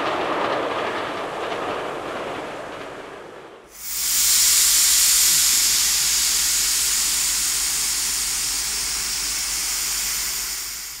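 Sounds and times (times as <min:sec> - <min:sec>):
steam locomotive hissing steam: 0:03.7 - 0:11.0.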